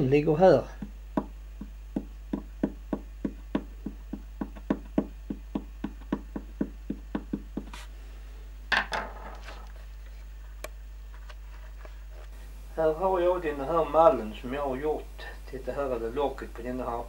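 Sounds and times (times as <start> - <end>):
tool tapping wooden plate: 0.8 - 7.7.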